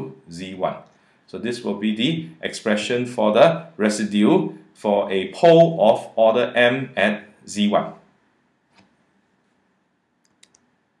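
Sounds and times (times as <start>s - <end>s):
faint clicks: 10.2s - 10.7s.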